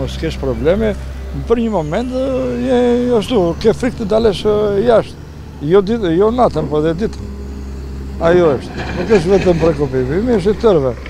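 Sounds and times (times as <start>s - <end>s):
man speaking: 0.0s - 7.3s, 8.2s - 11.0s
low rumble: 0.4s - 11.0s.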